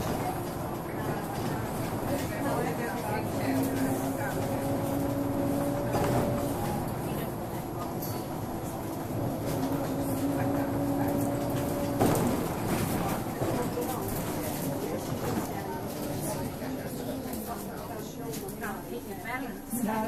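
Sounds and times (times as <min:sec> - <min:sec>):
bus engine and gearbox whine: 0:00.0 - 0:18.7.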